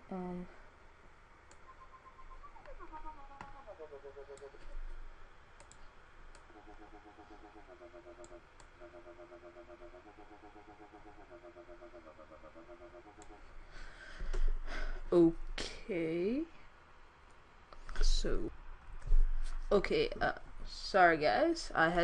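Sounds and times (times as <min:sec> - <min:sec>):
wobble bass synth: 0:01.7 - 0:04.7.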